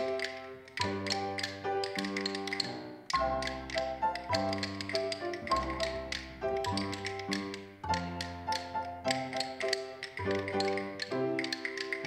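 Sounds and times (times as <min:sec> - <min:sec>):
rhythm sticks tapping: 0:00.0 - 0:12.0.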